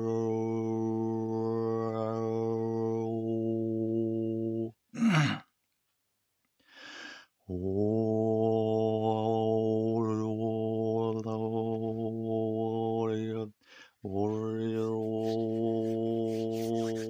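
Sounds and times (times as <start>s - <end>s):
breath: 6.6s - 7.4s, 13.6s - 14.0s
man overtone singing: 7.6s - 17.0s.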